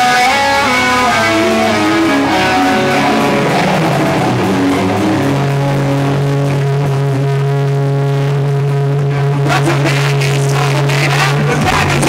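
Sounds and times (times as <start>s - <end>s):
live rock band: 0.0s - 12.0s
sustained electric guitar note: 0.0s - 12.0s
drum and cymbal hits: 1.2s - 8.0s, 11.6s - 12.0s.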